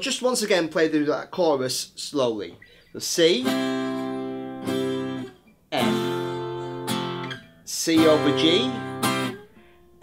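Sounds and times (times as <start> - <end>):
twelve-string guitar strummed chords: 3.4 - 10.0.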